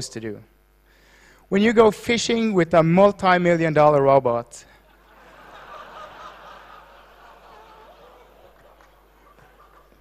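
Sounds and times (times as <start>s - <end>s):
audience laughing softly: 4.8s - 10.0s.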